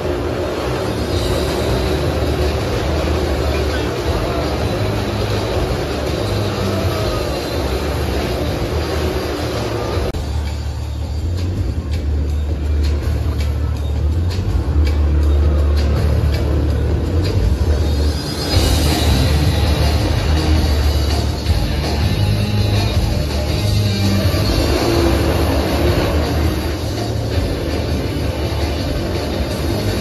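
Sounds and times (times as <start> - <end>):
motorcycle engines rumbling: 0.0 - 30.0.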